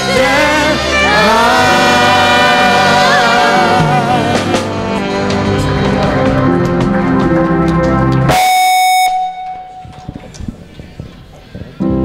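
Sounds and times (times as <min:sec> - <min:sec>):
live band music: 0:00.0 - 0:10.2
buzzy electronic note: 0:00.2 - 0:10.3.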